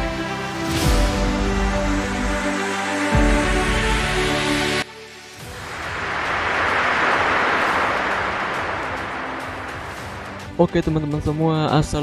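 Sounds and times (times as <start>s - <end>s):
hissing whoosh: 4.0s - 10.6s.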